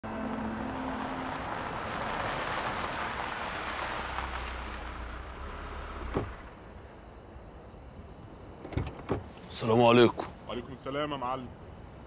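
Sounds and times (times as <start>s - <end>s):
car engine rumble: 0.0s - 10.8s.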